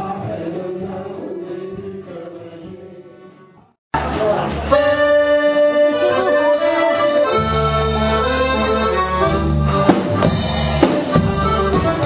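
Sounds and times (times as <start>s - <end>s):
accordion folk dance tune: 0.0s - 12.0s
hall noise: 0.0s - 12.0s.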